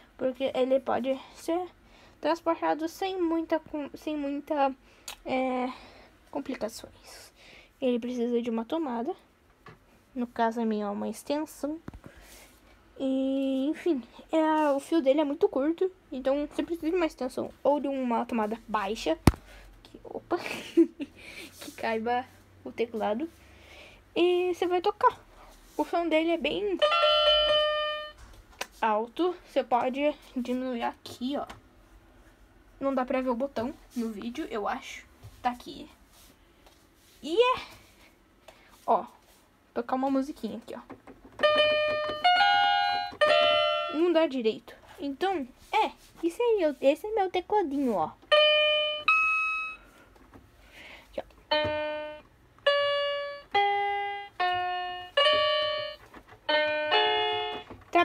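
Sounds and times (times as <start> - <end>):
electronic keyboard note: 41.4 - 44.0, 51.5 - 57.8.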